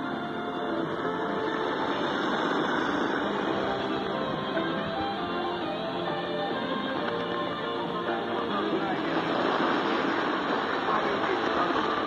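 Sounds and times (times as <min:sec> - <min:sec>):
radio static hiss: 0:00.0 - 0:06.2, 0:06.8 - 0:12.0
faint music on radio: 0:00.0 - 0:12.0.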